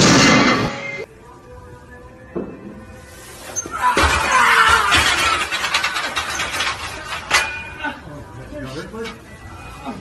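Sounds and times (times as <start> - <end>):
loud crash: 0.0 - 1.0
barbell clattering and rattling: 5.0 - 7.7.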